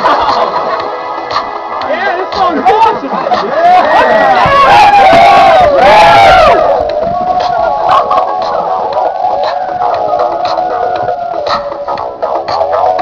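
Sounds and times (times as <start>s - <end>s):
voices howling together: 3.3s - 13.0s.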